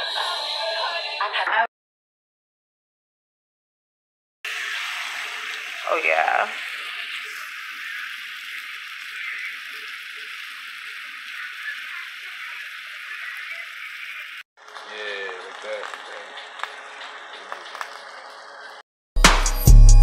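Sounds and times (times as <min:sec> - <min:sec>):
chicken sizzling in oil: 0:04.5 - 0:14.5.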